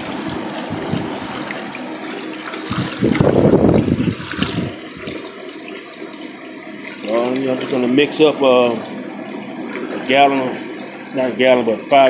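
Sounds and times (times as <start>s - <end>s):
hose water pouring into bucket: 0.0s - 8.8s.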